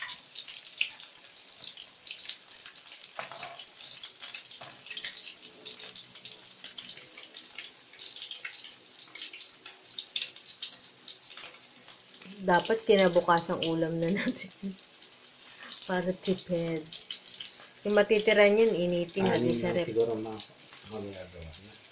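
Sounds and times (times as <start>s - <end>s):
fritter sizzling in hot oil: 0.0s - 21.9s.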